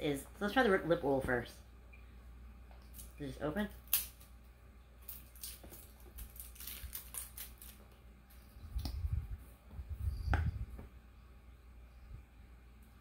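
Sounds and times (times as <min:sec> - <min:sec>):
scratchy crackling plastic: 0:05.0 - 0:08.0.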